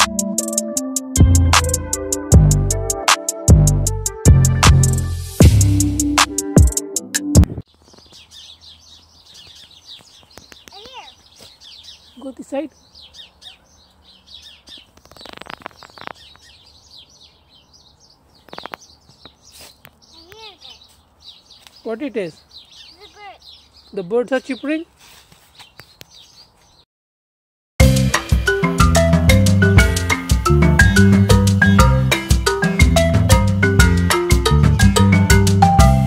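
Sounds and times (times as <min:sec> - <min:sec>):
drum-machine music: 0:00.0 - 0:07.6, 0:27.8 - 0:36.0
small birds chirping: 0:07.6 - 0:26.9, 0:29.0 - 0:35.8.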